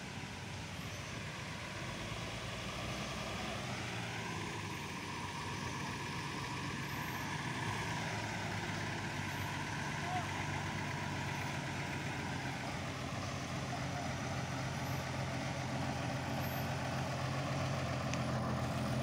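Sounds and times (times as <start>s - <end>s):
diesel truck engine drone: 0.0s - 19.0s
high engine whine: 0.0s - 19.0s.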